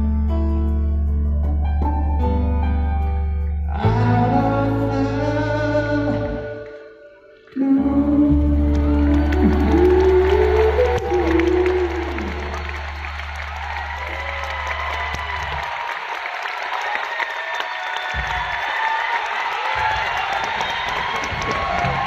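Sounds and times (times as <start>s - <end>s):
person singing: 3.7s - 13.3s
crowd applauding and cheering: 8.2s - 22.0s.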